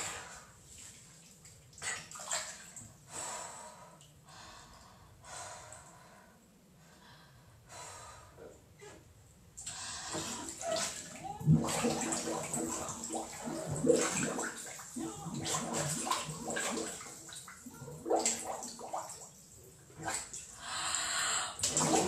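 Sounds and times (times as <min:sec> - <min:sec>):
water sloshing in a tub: 0:00.0 - 0:03.1, 0:09.6 - 0:20.7, 0:21.6 - 0:22.0
muffled voice through water: 0:10.5 - 0:13.5, 0:14.9 - 0:16.8.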